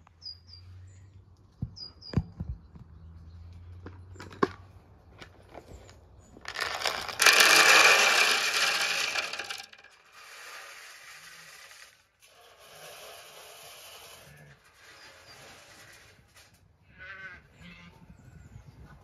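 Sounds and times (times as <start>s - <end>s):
dry feed pouring into metal trough: 6.5s - 14.3s.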